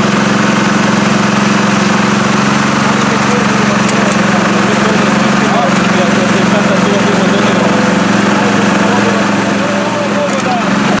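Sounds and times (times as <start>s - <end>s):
excavator engine idling: 0.0s - 11.0s.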